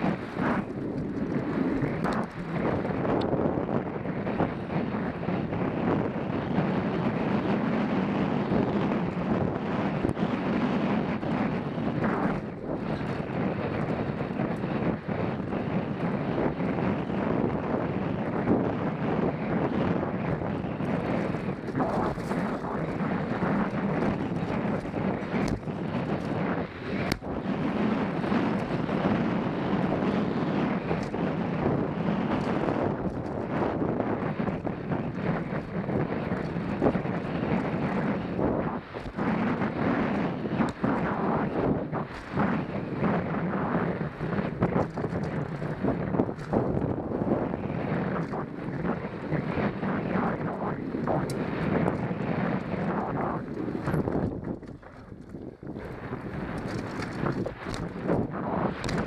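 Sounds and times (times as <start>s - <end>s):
bike rattling and knocking: 0.0s - 59.0s
tyres rumbling over dirt trail: 0.0s - 59.0s
wind rushing over microphone: 0.0s - 59.0s.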